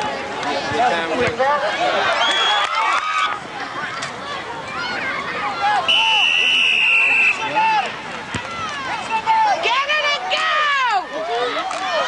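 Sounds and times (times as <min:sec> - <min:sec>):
spectators shouting and cheering: 0:00.0 - 0:12.0.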